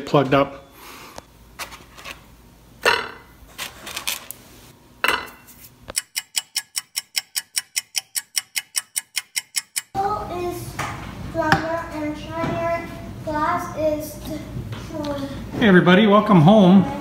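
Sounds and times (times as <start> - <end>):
rapid even ticking: 5.9 - 10.0.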